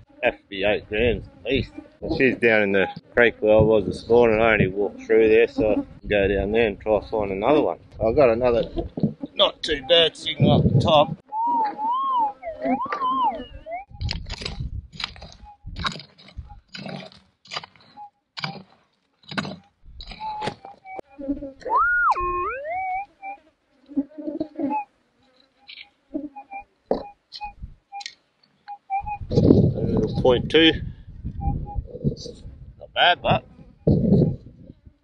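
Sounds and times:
metal detector wavering tone: 11.3 - 14.2, 21.6 - 23.4
scoop scraping stony ground: 14.1 - 20.8.

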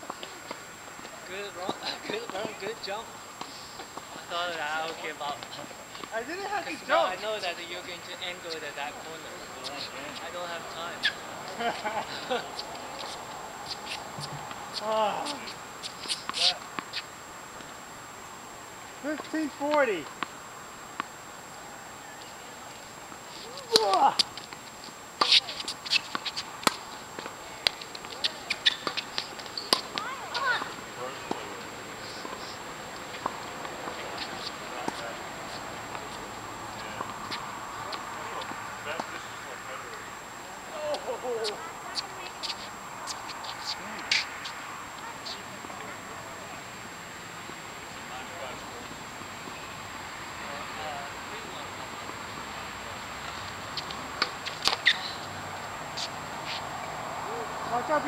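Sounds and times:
tennis balls bouncing on court: 0.0 - 2.7, 9.7 - 17.0, 23.5 - 39.3, 40.9 - 44.3, 53.2 - 57.0
outdoor background hiss: 0.0 - 58.0
tennis balls struck by rackets: 23.6 - 24.6, 25.2 - 32.5, 53.3 - 55.2.

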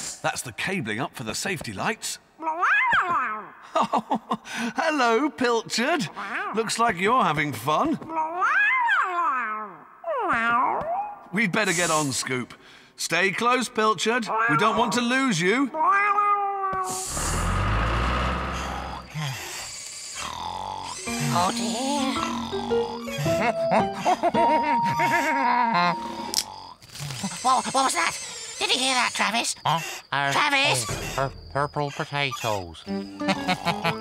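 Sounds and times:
cartoon cat meowing: 2.4 - 3.5, 8.1 - 11.1, 14.3 - 14.9
held musical note: 21.0 - 26.4
cartoon character giggling: 21.1 - 26.4, 27.2 - 28.2, 32.9 - 34.0.

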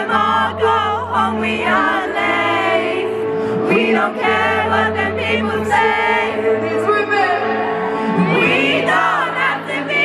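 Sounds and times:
crowd singing along: 0.0 - 10.0
live pop concert music: 0.0 - 10.0
voices singing into microphone: 0.0 - 10.0.

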